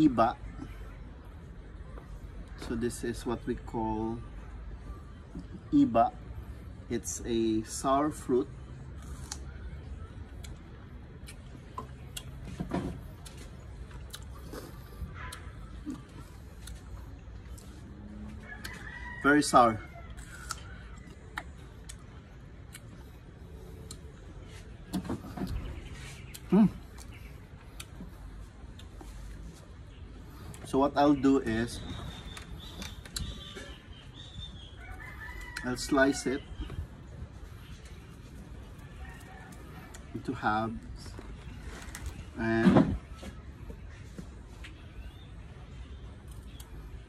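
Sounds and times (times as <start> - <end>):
person chewing fruit: 8.9 - 9.5, 10.3 - 17.9, 20.1 - 30.7
birds calling with whistled notes: 25.0 - 28.2, 29.6 - 39.5, 40.6 - 47.0.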